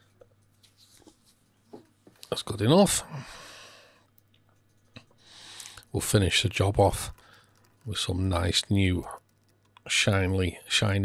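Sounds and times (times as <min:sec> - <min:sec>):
faint steady hum: 0:00.0 - 0:11.0
person breathing out: 0:03.1 - 0:04.0.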